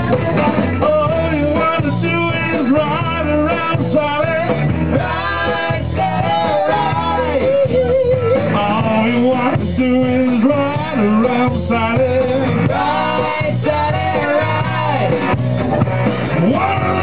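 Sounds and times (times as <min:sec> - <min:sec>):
man singing: 0:00.0 - 0:15.4, 0:16.3 - 0:17.0
bass guitar: 0:00.0 - 0:17.0
drum kit: 0:00.0 - 0:17.0
electric guitar: 0:00.0 - 0:17.0.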